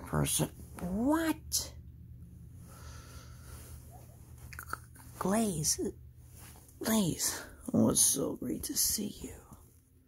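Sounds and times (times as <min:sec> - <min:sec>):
low steady hum: 0:00.0 - 0:10.0
plush toy rustling: 0:03.6 - 0:09.7.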